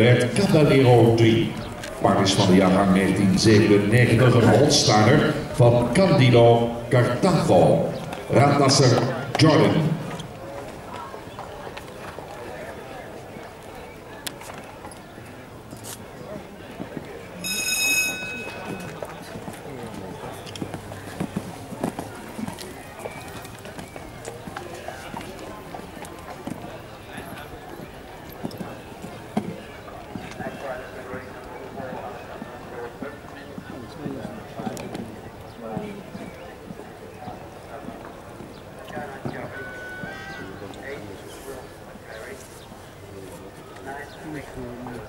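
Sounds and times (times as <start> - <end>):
soft hoofbeats on sand: 18.2 - 45.0
horse hoofbeats on sand: 18.4 - 31.2.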